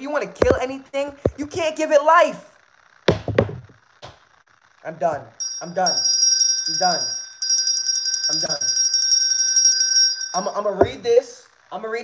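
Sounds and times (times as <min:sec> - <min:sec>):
sharp knocks: 0:03.1 - 0:04.2.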